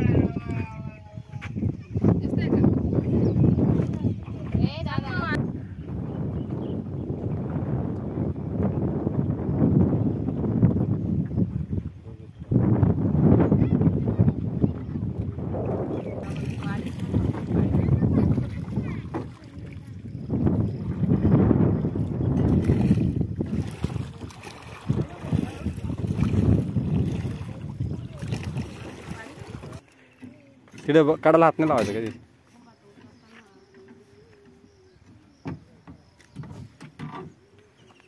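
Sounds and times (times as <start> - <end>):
wind rumbling on microphone: 0.0 - 32.2.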